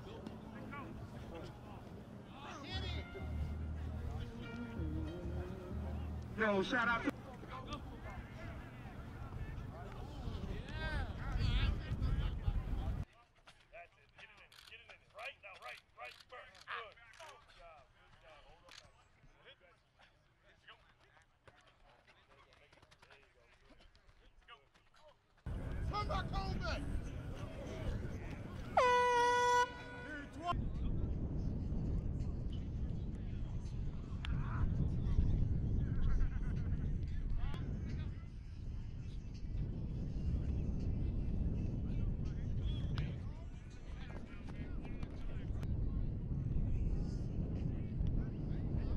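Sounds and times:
faint voices: 0:00.0 - 0:13.2, 0:25.5 - 0:31.0, 0:41.7 - 0:48.9
wind rumbling on microphone: 0:07.8 - 0:13.0, 0:30.4 - 0:48.9.

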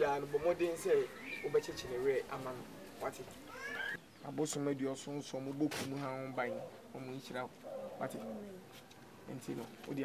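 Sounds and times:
dove cooing: 0:06.4 - 0:09.3.

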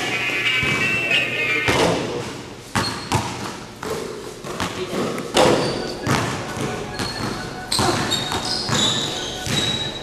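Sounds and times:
basketball bouncing on gym floor: 0:01.7 - 0:10.0.

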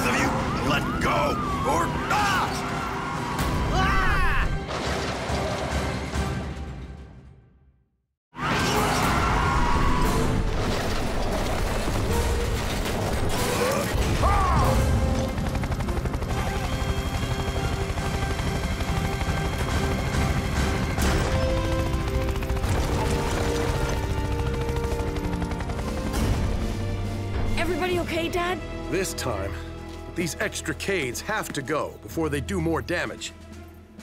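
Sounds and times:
dramatic music: 0:00.0 - 0:07.6, 0:08.4 - 0:34.0.

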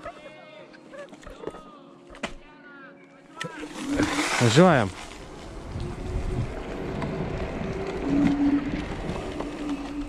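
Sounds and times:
tyres rumbling on road: 0:04.0 - 0:10.0
wind across microphone: 0:05.2 - 0:10.0.

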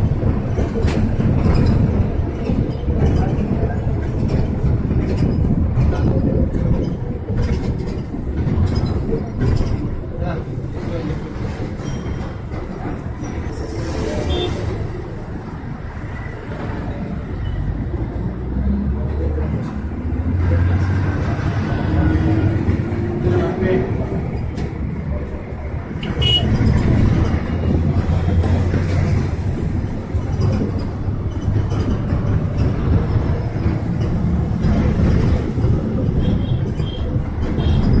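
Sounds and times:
bus engine rumble: 0:00.0 - 0:38.0
bus horn toot: 0:26.0 - 0:26.6.

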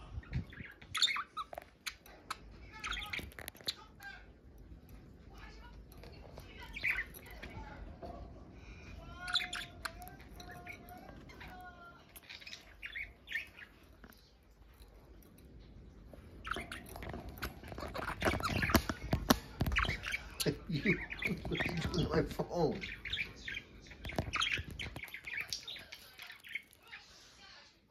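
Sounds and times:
budgerigars chattering: 0:16.4 - 0:27.0.

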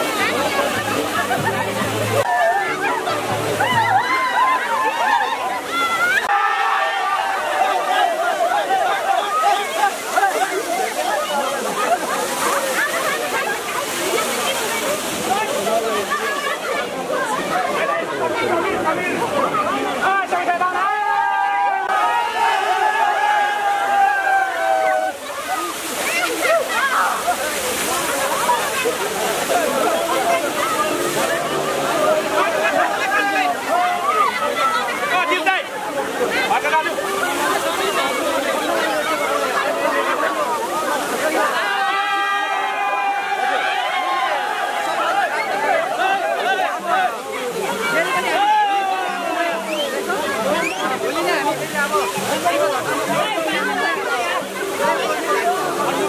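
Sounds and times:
water spraying from pipe: 0:00.0 - 0:16.6, 0:23.4 - 0:43.4
crowd shouting and cheering: 0:00.0 - 0:56.0.

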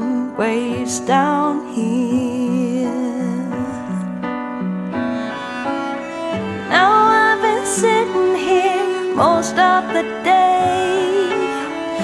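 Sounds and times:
soft pop ballad music: 0:00.0 - 0:12.0.

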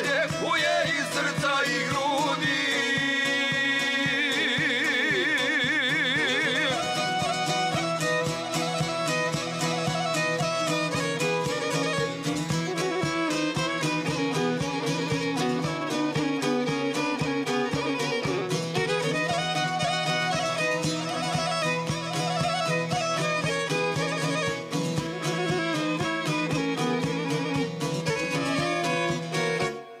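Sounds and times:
strummed plucked strings: 0:00.0 - 0:30.0
violin melody: 0:00.0 - 0:30.0.

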